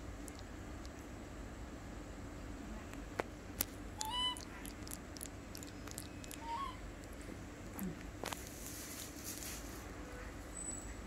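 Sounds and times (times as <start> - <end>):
baby monkey high-pitched calls: 4.0 - 6.9.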